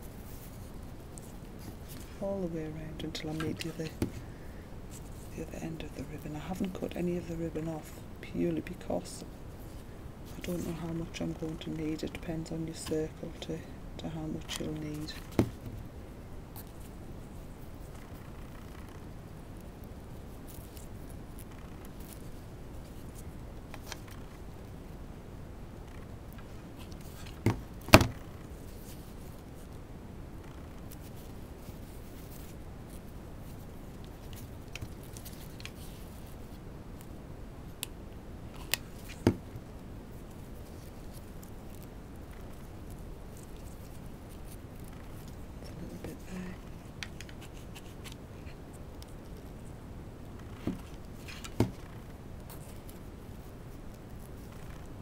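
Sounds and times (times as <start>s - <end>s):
steady low hiss: 0.0s - 55.0s.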